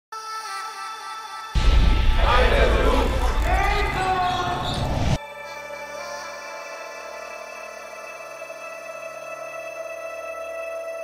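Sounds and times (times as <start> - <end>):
voice over loud music: 1.6 - 5.2.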